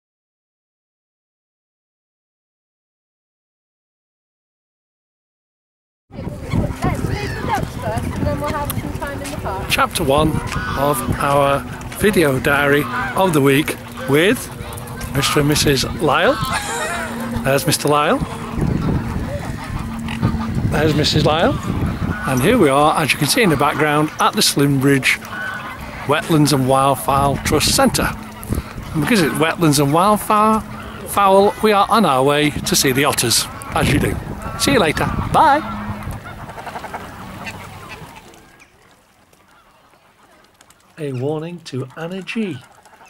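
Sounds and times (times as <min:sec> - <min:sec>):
wind rumbling on microphone: 0:06.1 - 0:38.6
geese and swans calling: 0:06.2 - 0:43.0
waterfowl honking and quacking: 0:06.2 - 0:43.0.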